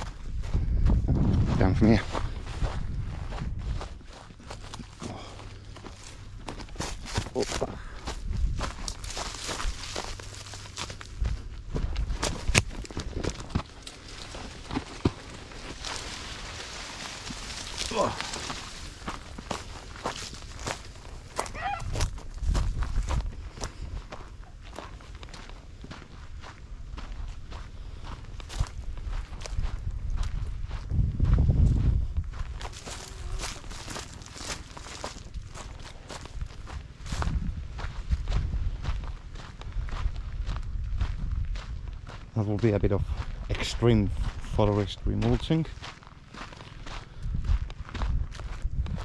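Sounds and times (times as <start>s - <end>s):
footsteps crunching through dry grass: 0.0s - 49.0s.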